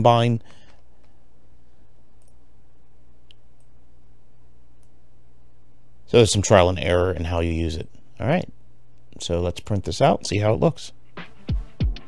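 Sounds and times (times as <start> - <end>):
steady low hum: 0.0 - 11.2.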